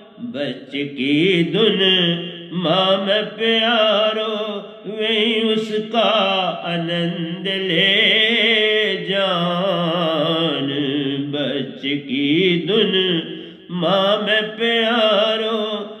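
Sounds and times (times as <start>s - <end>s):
man singing devotional song: 0.0s - 16.0s.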